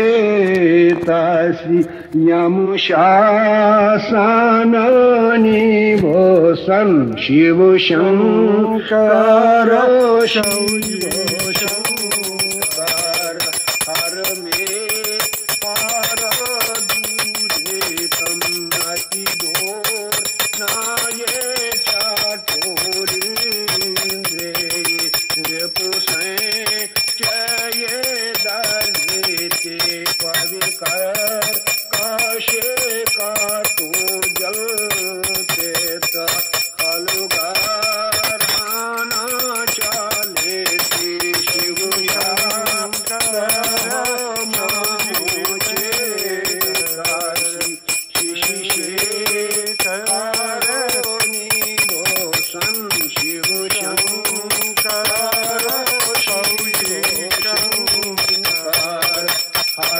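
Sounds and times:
person singing a hymn: 0.0 - 13.5
brass hand bell ringing rapidly: 9.8 - 59.9.

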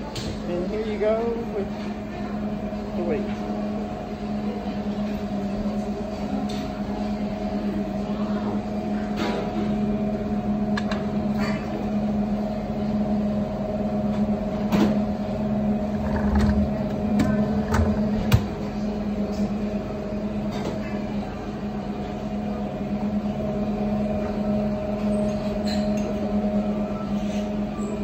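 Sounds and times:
refrigerated display case hum: 0.0 - 28.0.

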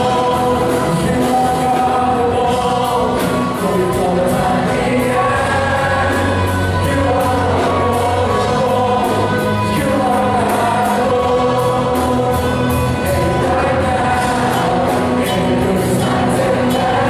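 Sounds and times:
many voices singing along: 0.0 - 17.0
steady drum beat: 0.0 - 17.0
worship band playing gospel song: 0.0 - 17.0.

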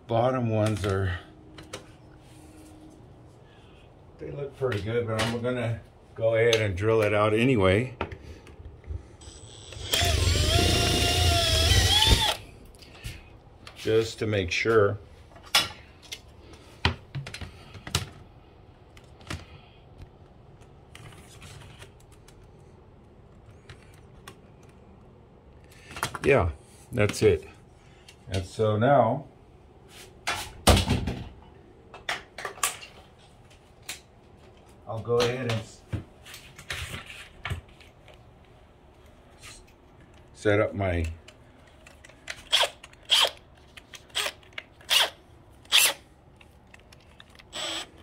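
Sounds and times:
cordless drill drilling: 9.2 - 12.4, 42.5 - 43.4, 44.1 - 46.0, 47.5 - 48.0.

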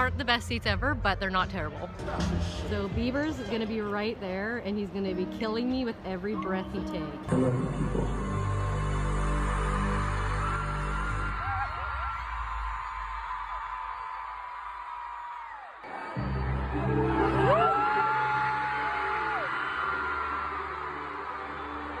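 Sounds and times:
loud amplified music with bass: 0.1 - 3.6, 7.2 - 11.4
fans screaming: 8.4 - 22.0.

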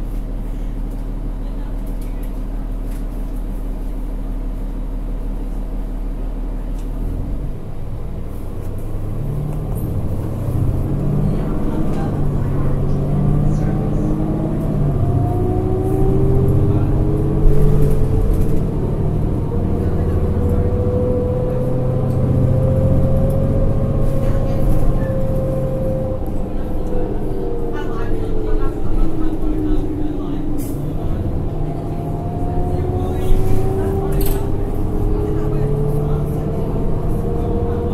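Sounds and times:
bus diesel engine droning: 0.0 - 37.9.

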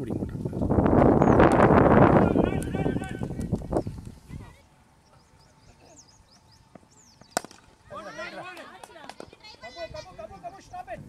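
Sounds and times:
voices shouting: 2.0 - 3.5, 7.8 - 10.9
cricket bat hitting ball: 7.3 - 7.7.

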